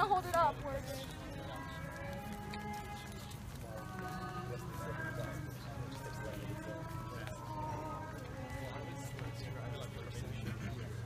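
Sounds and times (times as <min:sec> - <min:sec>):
footsteps on pavement: 0:00.0 - 0:11.0
people singing a hymn: 0:00.0 - 0:11.0.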